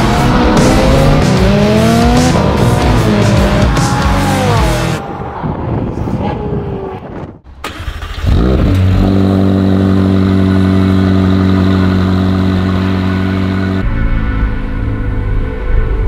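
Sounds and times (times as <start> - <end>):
car engine revving and idling: 0.0 - 5.2, 8.0 - 16.0.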